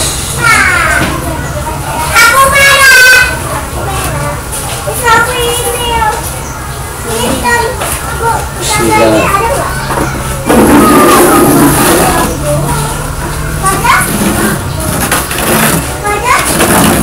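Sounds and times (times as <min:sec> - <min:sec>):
children talking and calling: 0:00.0 - 0:17.0.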